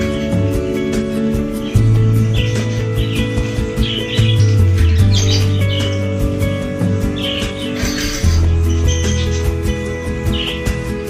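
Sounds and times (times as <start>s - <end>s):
music with low sustained tones: 0.0s - 11.0s
small birds chirping: 0.0s - 11.0s.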